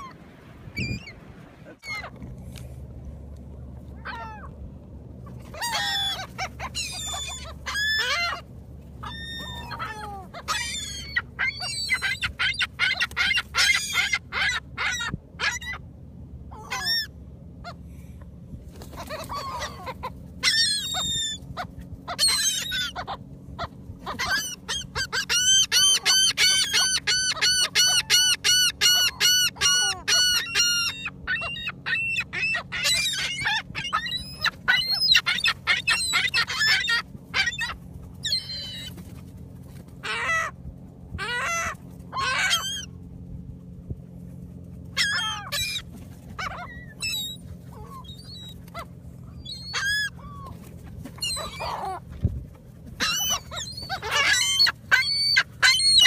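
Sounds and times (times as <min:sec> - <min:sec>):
gulls calling: 0:00.0 - 0:02.3, 0:03.7 - 0:56.0.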